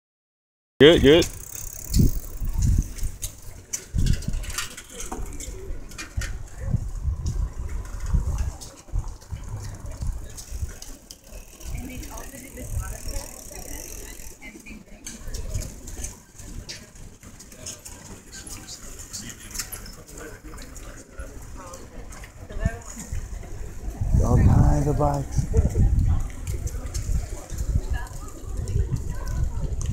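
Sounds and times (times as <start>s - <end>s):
wind rumbling on microphone: 1.0s - 13.4s, 21.3s - 29.9s
small clicks and rattles: 1.3s - 6.6s.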